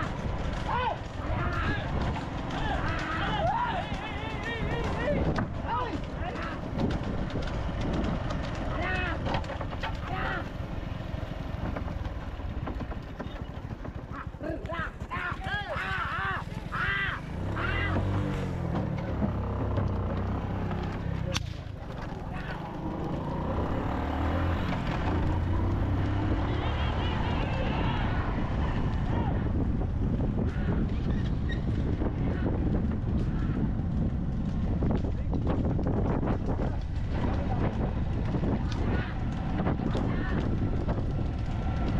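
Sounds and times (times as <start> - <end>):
wind buffeting microphone: 0.0 - 41.9
wooden cart rattling: 0.0 - 41.9
man shouting: 0.6 - 6.6, 10.0 - 10.5, 14.4 - 18.1, 26.4 - 28.4, 29.0 - 29.5
steady low rumble: 26.6 - 41.9.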